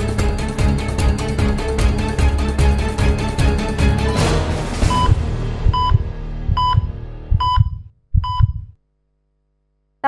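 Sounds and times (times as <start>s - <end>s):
theme music: 0.0s - 7.6s
low heartbeat thump: 4.8s - 8.8s
heart monitor beeps: 4.9s - 8.8s.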